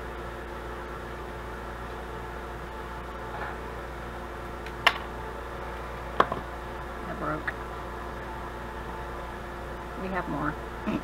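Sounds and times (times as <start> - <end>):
mechanical room hum: 0.0 - 11.0.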